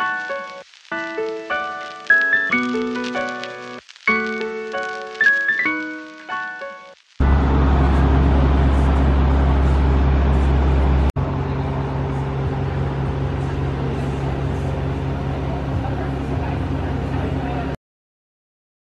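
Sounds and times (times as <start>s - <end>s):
outdoor ambience with hum: 7.1s - 17.8s.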